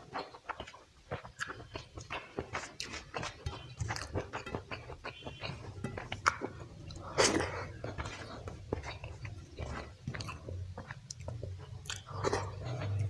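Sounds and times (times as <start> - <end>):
fingers squelching in wet food: 0.0 - 13.0
mouth chewing and smacking: 0.0 - 13.0.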